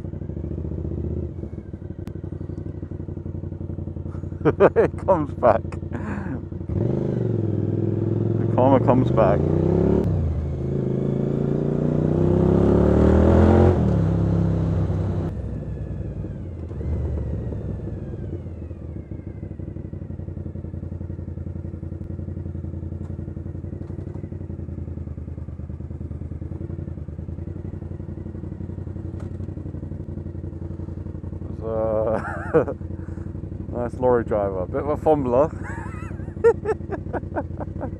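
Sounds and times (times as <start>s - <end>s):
motorcycle engine revving and idling: 0.0s - 37.9s.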